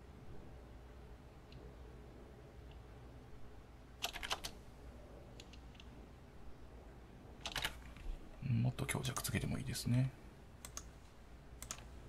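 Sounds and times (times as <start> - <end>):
faint steady hum: 0.0 - 12.0
keyboard clicks: 7.4 - 7.8, 10.6 - 10.9, 11.6 - 11.9.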